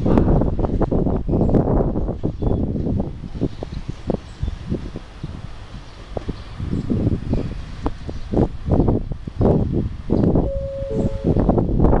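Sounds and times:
wind buffeting microphone: 0.0 - 12.0
steady tone: 10.4 - 11.9.

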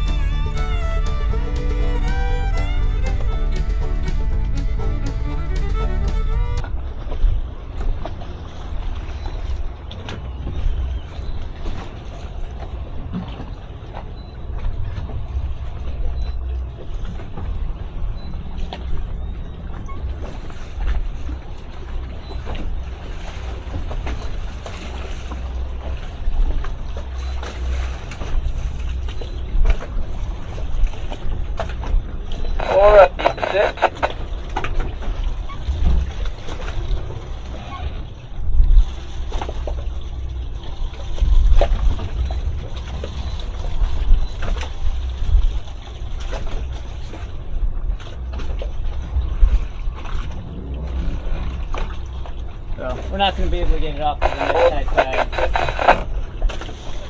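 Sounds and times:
wind buffeting microphone: 0.0 - 8.0, 47.3 - 53.6
boat engine rumbling: 0.0 - 57.0.

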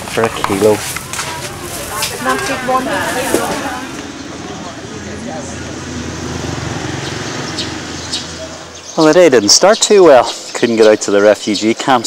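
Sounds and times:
faint voices: 0.0 - 6.6
street traffic: 0.0 - 12.0.

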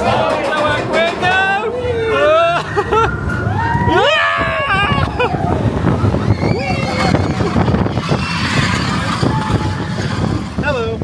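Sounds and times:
people whooping and shouting: 1.6 - 10.5.

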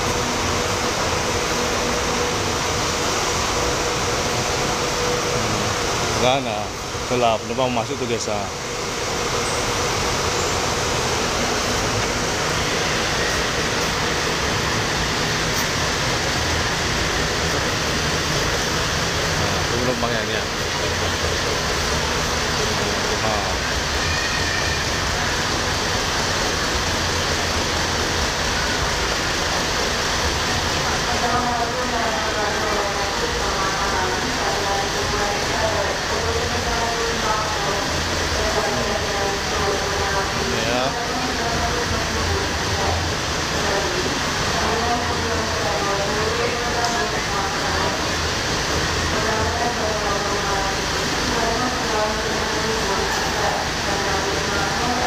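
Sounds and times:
bus engines idling: 0.0 - 55.0
people talking: 5.2 - 8.6, 19.3 - 25.7, 30.8 - 48.3, 49.0 - 55.0.

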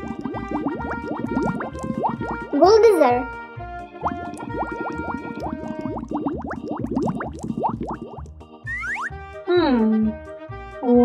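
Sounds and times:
cartoon bubble bloops: 0.0 - 3.2, 4.0 - 9.1.

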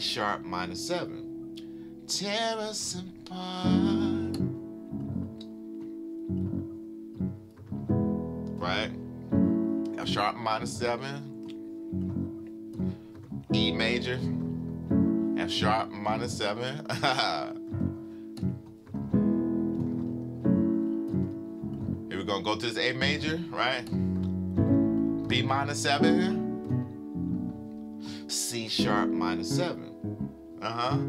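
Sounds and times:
piano chords: 0.0 - 31.0.

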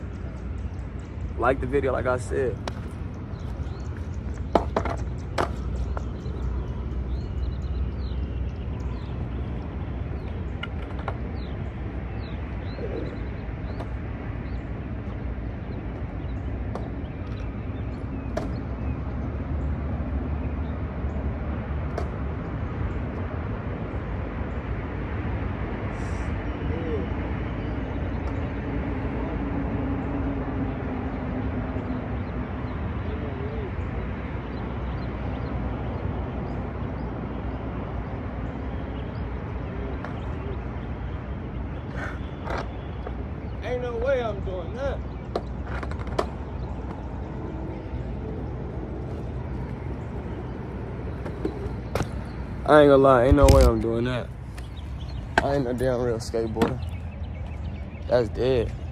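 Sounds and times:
low rumble with hiss: 0.0 - 58.9
bird chirps: 31.8 - 58.9.

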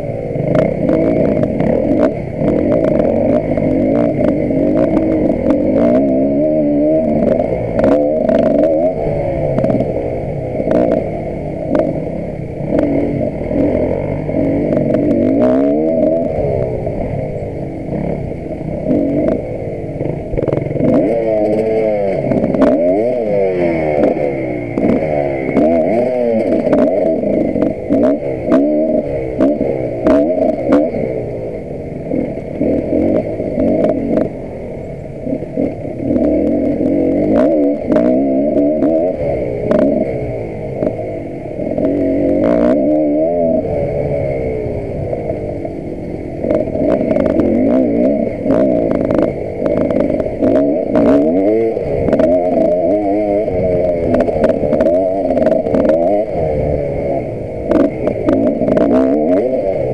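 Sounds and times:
dirt bike engine revving: 0.0 - 59.9
knocks and rattles of bike: 0.0 - 59.9.

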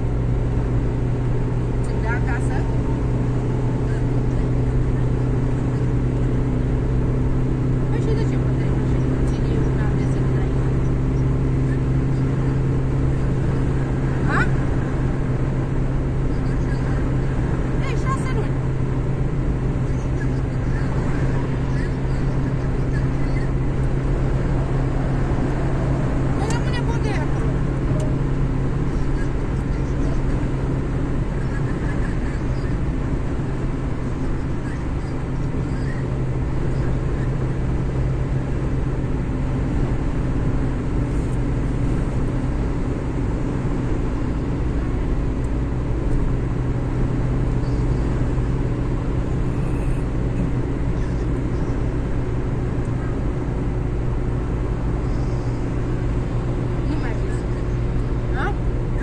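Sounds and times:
car road and engine drone: 0.0 - 59.0.

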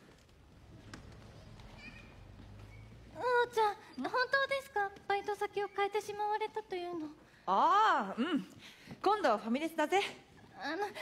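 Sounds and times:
faint high squeak: 1.7 - 3.0.

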